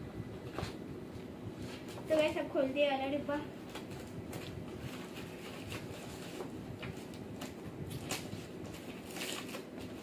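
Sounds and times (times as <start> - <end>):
scissors scraping packing tape: 7.9 - 9.7.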